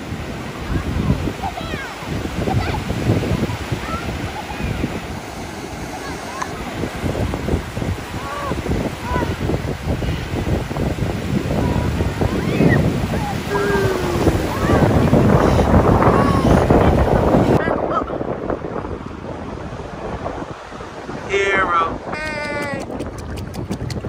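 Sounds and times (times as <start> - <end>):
ocean surf breaking: 0.0 - 24.0
wind buffeting microphone: 0.0 - 24.0
people shouting in water: 0.6 - 2.9, 8.1 - 9.6, 11.4 - 17.0, 21.3 - 22.9.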